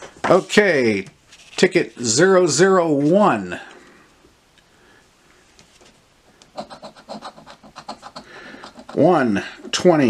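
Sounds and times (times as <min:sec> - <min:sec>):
lottery ticket being scratched: 0:06.6 - 0:09.8.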